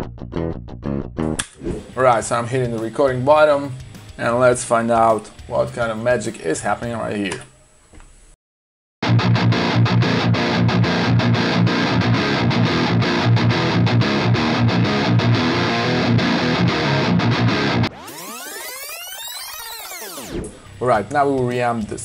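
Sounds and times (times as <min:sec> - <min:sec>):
distorted electric guitar riff: 0:09.0 - 0:20.8.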